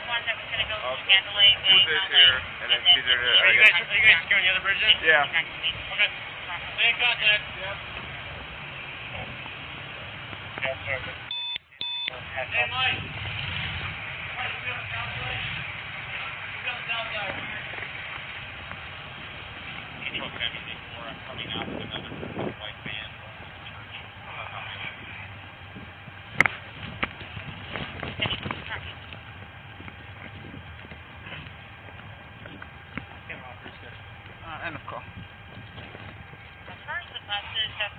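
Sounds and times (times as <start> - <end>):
street traffic rumble: 0.0 - 37.9
faint voices: 19.6 - 37.9
low muffled thuds: 25.7 - 34.4, 35.0 - 37.8
footsteps on hard walkway: 26.8 - 34.4, 35.1 - 36.9.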